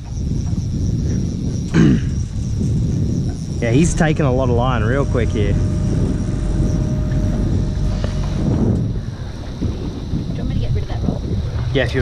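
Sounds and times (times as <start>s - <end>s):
outboard motor rumbling: 0.0s - 12.0s.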